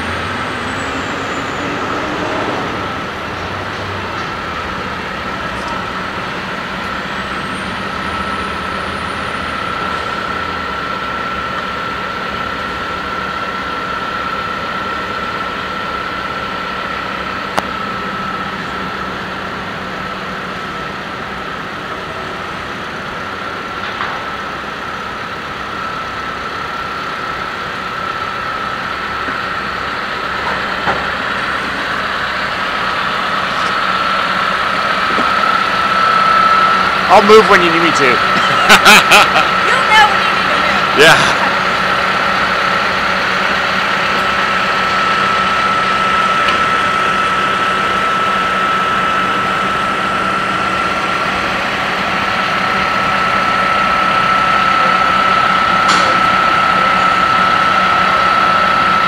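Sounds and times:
diesel engine running: 0.0s - 59.0s
steady high whine: 0.0s - 59.0s.

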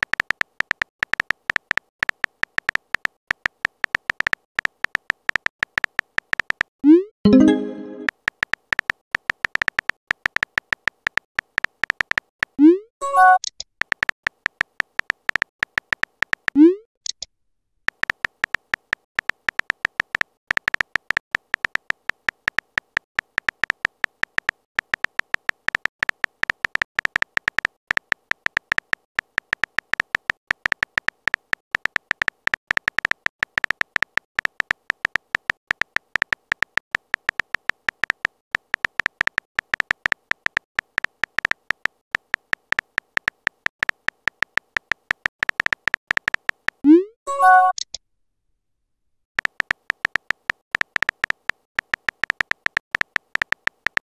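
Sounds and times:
phone keyboard typing clicks: 0.0s - 17.2s, 17.9s - 48.0s, 49.4s - 54.0s.

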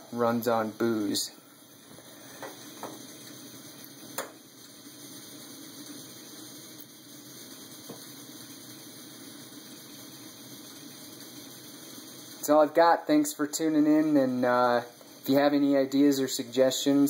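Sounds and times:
stove burner rushing: 0.0s - 17.0s.

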